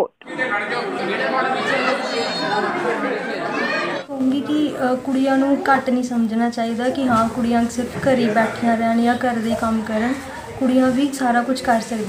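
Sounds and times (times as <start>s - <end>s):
women chattering: 0.3s - 12.0s.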